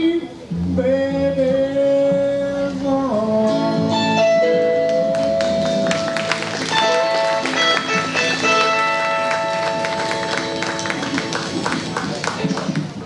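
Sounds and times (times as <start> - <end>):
acoustic guitar: 0.0 - 13.0
electric guitar: 0.0 - 13.0
upright bass: 0.0 - 13.0
long held lead notes: 0.3 - 12.2.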